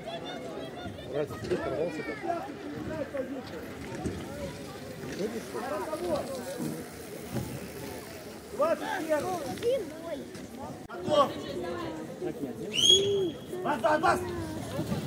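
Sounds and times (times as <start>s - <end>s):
outdoor background noise: 0.0s - 15.0s
people talking and calling out: 0.0s - 15.0s.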